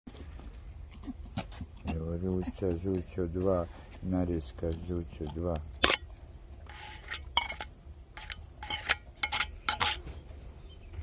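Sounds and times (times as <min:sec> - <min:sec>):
dog eating with mouth smacks: 0:00.1 - 0:06.6.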